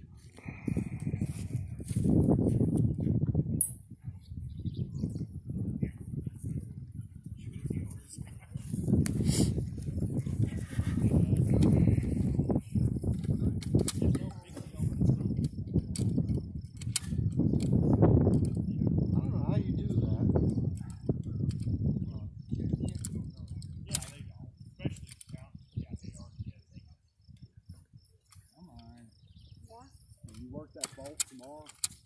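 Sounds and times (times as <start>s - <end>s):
wind buffeting microphone: 0.0s - 32.0s
sharp clicks: 30.3s - 32.0s.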